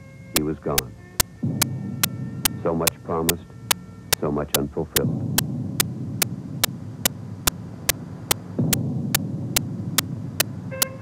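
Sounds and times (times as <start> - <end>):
low soundtrack hum and rumble: 0.0 - 11.0
sharp clicks: 0.4 - 3.4
person narrating: 4.2 - 5.1.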